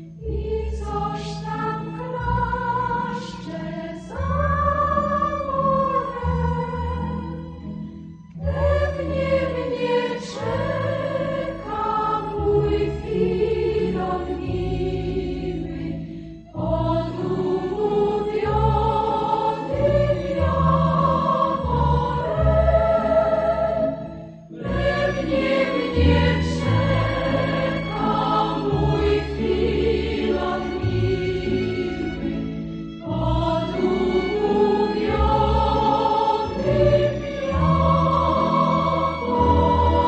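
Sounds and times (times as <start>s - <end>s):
choir singing: 0.0s - 7.6s, 8.4s - 40.0s.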